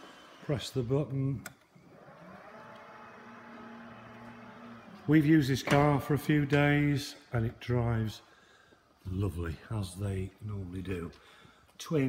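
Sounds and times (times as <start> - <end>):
power tailgate motor whirring: 1.5 - 6.0.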